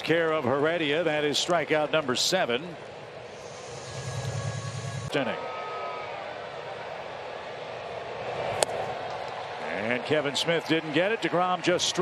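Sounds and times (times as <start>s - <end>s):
ballpark crowd noise: 0.0s - 3.4s, 5.1s - 12.0s.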